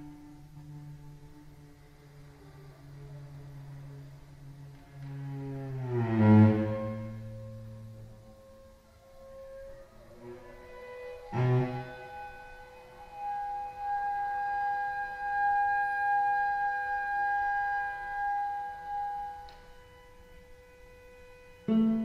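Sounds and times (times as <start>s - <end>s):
bassoon: 0.0s - 22.0s
cello: 0.0s - 22.0s.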